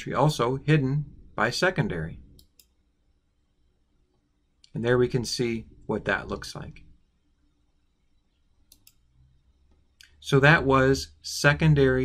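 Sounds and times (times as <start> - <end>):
computer mouse clicking: 8.7 - 9.1.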